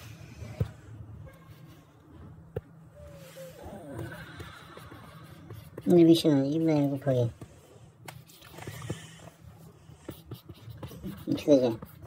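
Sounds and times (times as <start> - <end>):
pen scratching and tapping on paper: 4.0 - 9.4, 10.0 - 12.0.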